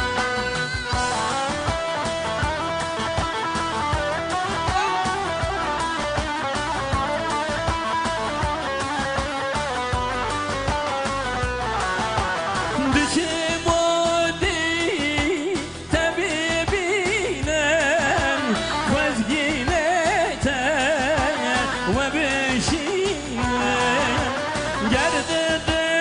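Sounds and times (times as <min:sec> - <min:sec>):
plucked string melody: 0:00.0 - 0:26.0
steady drum beat: 0:00.0 - 0:26.0.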